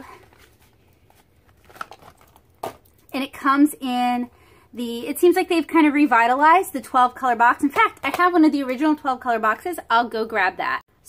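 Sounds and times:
cardboard packaging rustling: 0.0s - 3.0s.

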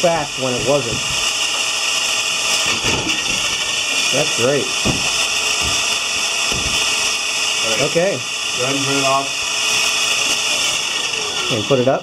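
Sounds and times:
electric motor whirring: 0.0s - 12.0s.

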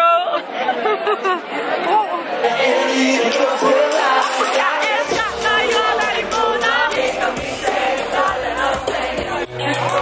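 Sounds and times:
crowd chatter: 0.0s - 10.0s
voices talking and laughing: 0.0s - 10.0s.

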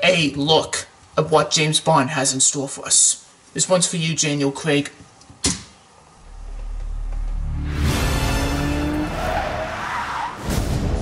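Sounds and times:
car tyres squealing: 8.1s - 10.6s.

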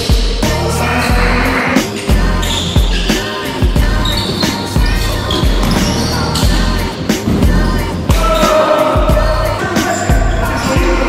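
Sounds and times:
music with thudding beat and bass: 0.0s - 11.0s.

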